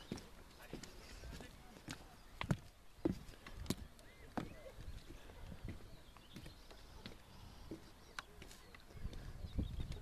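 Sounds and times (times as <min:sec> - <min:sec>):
footsteps on wooden boards: 0:00.0 - 0:10.0.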